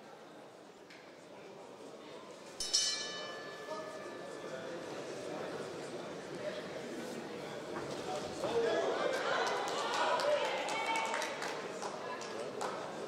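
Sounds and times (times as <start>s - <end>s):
crowd shouting in a hall: 8.2s - 13.0s.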